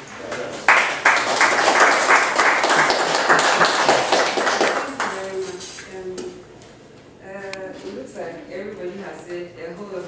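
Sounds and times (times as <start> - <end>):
audience applauding: 0.2 - 5.3.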